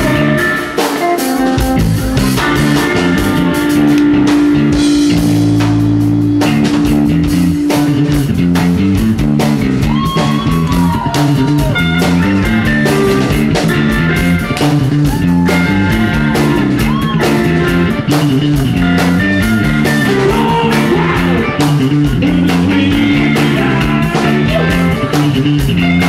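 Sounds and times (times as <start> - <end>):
bass guitar: 0.0 - 26.0
drum kit: 0.0 - 26.0
electric guitar: 0.0 - 26.0
high bending guitar notes: 0.0 - 26.0.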